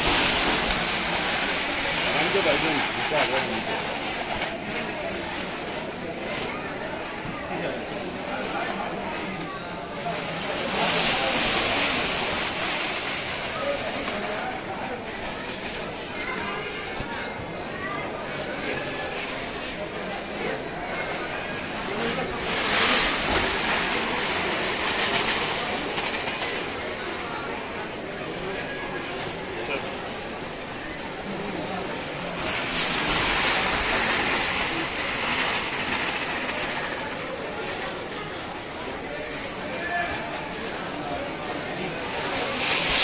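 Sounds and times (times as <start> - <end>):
rice pouring into cauldron: 0.0 - 15.1, 18.1 - 43.0
steady background noise: 0.0 - 43.0.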